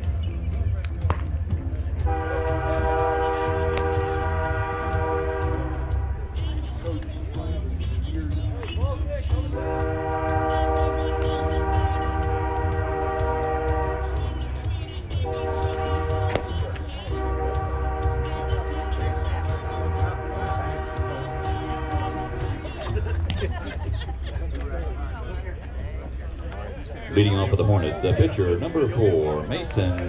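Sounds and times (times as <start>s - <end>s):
train horn blasts: 2.0s - 6.4s, 9.5s - 22.6s.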